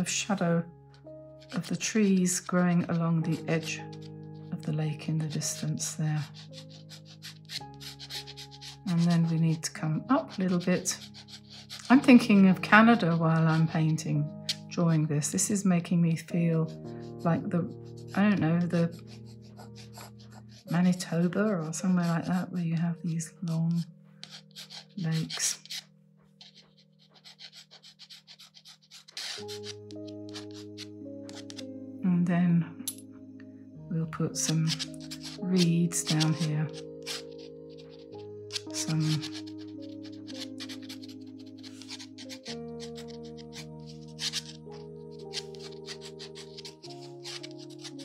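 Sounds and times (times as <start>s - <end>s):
pen scratching on paper: 0.0s - 31.7s, 34.3s - 48.0s
soft background music: 0.0s - 48.0s.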